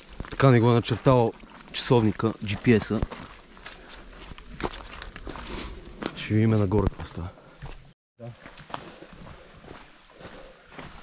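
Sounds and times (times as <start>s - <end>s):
footsteps on muddy trail: 0.0s - 11.0s.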